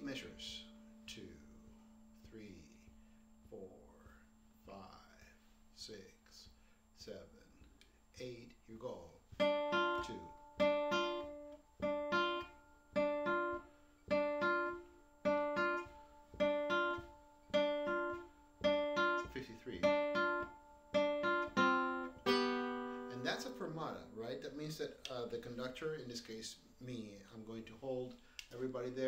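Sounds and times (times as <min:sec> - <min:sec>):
nylon-string guitar strumming chords: 0:00.0 - 0:04.7, 0:09.3 - 0:25.2.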